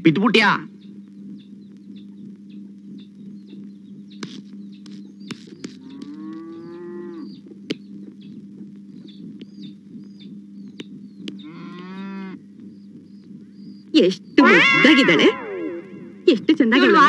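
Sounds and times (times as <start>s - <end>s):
steady low hum: 0.0s - 17.0s
bullock lowing: 0.7s - 17.0s
sharp clicks: 3.6s - 6.6s, 10.7s - 11.9s.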